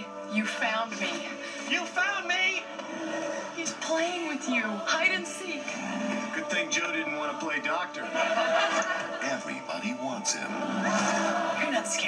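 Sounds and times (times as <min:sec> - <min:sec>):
trailer music from television: 0:00.0 - 0:12.0.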